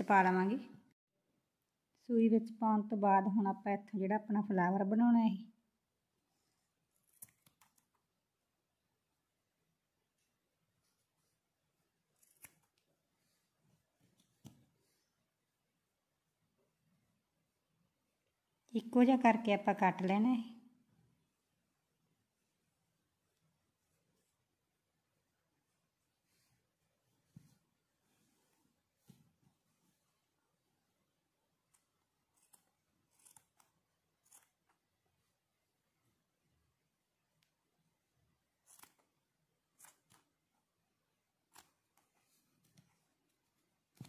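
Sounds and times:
scissors snipping yarn: 0:06.9 - 0:08.0, 0:12.2 - 0:12.9, 0:31.6 - 0:35.0, 0:38.6 - 0:40.5, 0:41.4 - 0:43.0.

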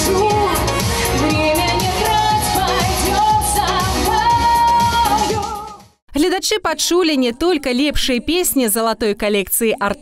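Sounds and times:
woman singing pop: 0:00.0 - 0:05.9, 0:06.6 - 0:10.0
dance-pop backing track: 0:00.0 - 0:06.0.

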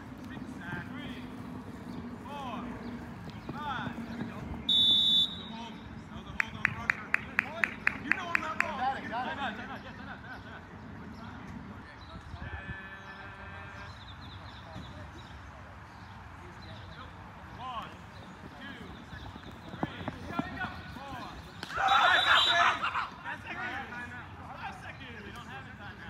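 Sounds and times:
players calling out: 0:17.6 - 0:25.5
loud shouting: 0:21.6 - 0:23.8.

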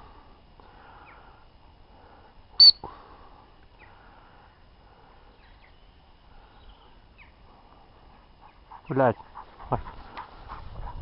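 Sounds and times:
high-pitched whistle pip: 0:02.6 - 0:02.8.

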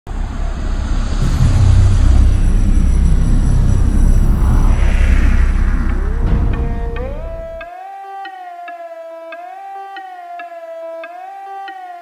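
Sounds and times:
deep cinematic rumble: 0:00.1 - 0:07.6.

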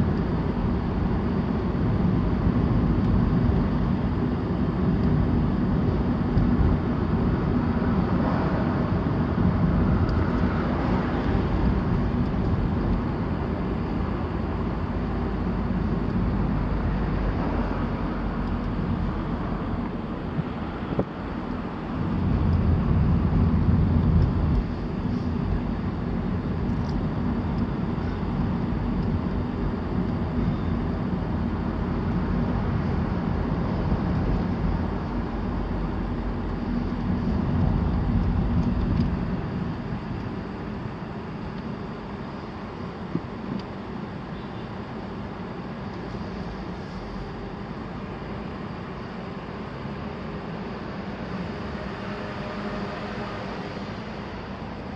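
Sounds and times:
car engine and tyres rumbling: 0:00.0 - 0:54.9.

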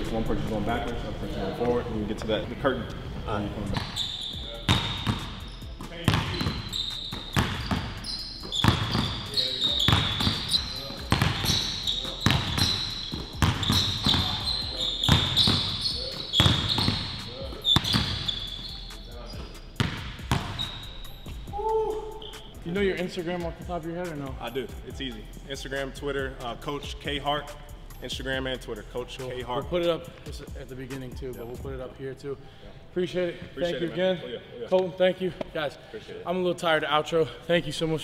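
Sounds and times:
basketballs bouncing on wooden floor: 0:04.7 - 0:05.4, 0:06.0 - 0:18.5, 0:19.4 - 0:20.7.

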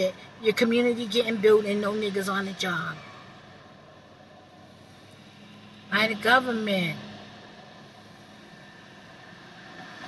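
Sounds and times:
car engine hum inside cabin: 0:00.0 - 0:10.0.

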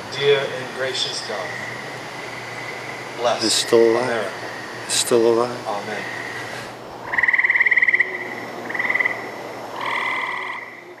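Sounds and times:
frog trilling: 0:01.0 - 0:11.0.

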